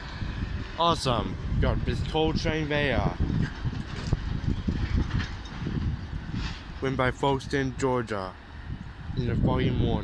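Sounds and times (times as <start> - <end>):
train rumbling: 0.0 - 10.0
wind buffeting microphone: 0.0 - 10.0.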